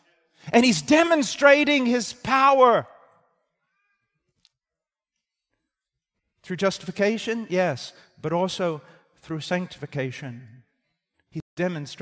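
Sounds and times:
man speaking: 0.4s - 3.0s, 6.4s - 10.6s, 11.6s - 12.0s.

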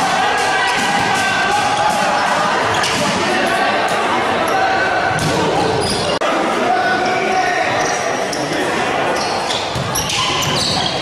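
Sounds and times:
players shouting: 0.0s - 11.0s
spectators' voices: 0.0s - 11.0s.

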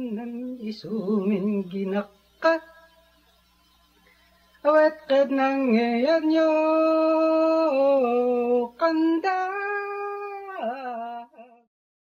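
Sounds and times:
solo voice chanting: 4.6s - 11.7s.

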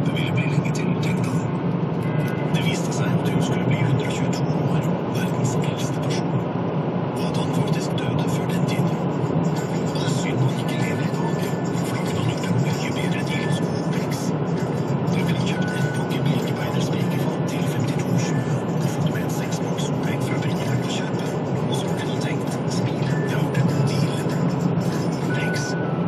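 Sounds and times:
car interior road noise: 0.0s - 26.0s.

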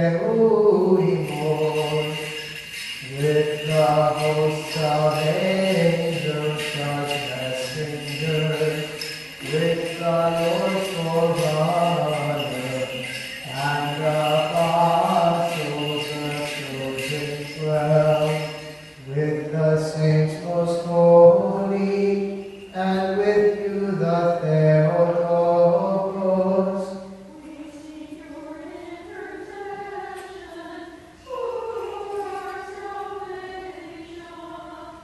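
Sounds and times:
man chanting a hymn: 0.0s - 27.2s.

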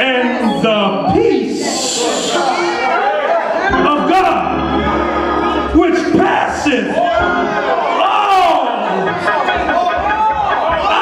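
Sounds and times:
man preaching amplified: 0.0s - 2.9s, 3.7s - 9.2s.

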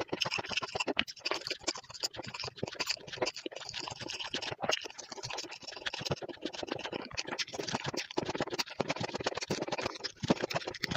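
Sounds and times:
wet chewing crackles: 0.0s - 10.9s.

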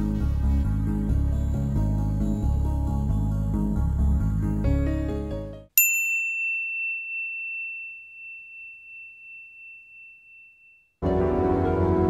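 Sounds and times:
high bell-like chime: 5.8s - 11.0s.

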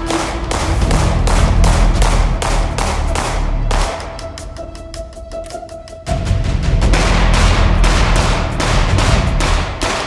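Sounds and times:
pistol shots: 7.0s - 10.0s.

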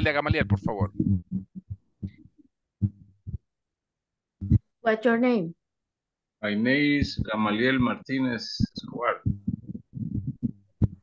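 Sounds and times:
muffled voice syllables: 0.0s - 1.0s, 6.5s - 10.5s.

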